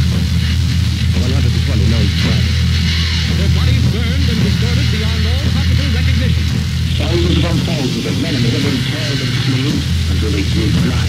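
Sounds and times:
low droning hum: 0.0s - 11.0s
person talking: 1.2s - 2.5s, 3.3s - 11.0s.

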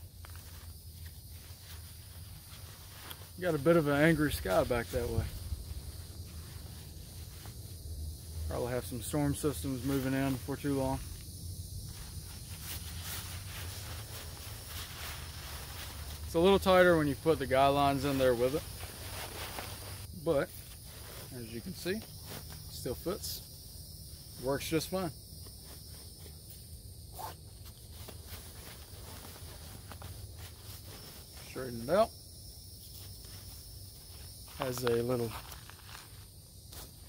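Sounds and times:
insects chirring: 0.0s - 37.0s
faint rustles: 0.2s - 11.2s, 11.8s - 23.4s, 25.4s - 31.8s.

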